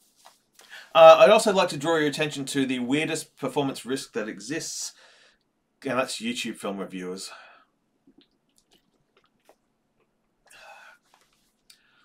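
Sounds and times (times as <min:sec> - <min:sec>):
short breath out: 0:10.5 - 0:11.1.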